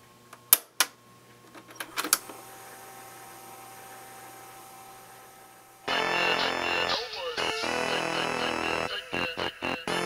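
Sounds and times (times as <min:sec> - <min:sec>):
tape transport hiss and hum: 0:00.0 - 0:10.0.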